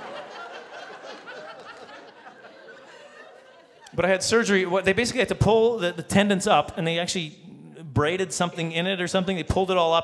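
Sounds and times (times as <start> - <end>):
audience laughter: 0.0 - 4.0
man speaking: 3.9 - 10.0.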